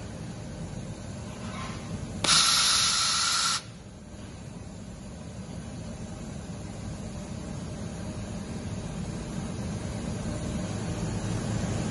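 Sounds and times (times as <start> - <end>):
laser welding head hissing: 2.2 - 3.8.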